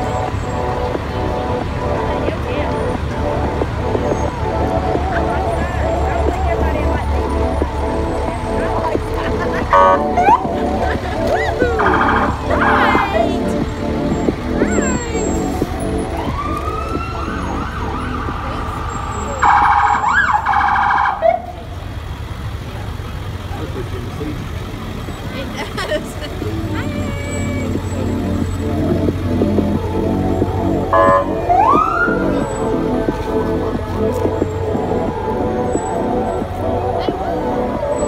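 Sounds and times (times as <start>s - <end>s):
truck engines rumbling: 0.0s - 38.0s
fire truck horn blast: 9.6s - 10.8s, 30.9s - 32.3s
siren whoops: 16.1s - 21.6s, 30.9s - 32.5s.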